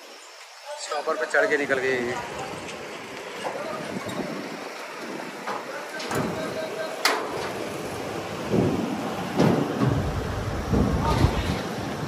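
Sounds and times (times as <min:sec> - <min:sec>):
wheels thumping off ramp: 0:03.4 - 0:12.0
low rumble: 0:09.8 - 0:11.6.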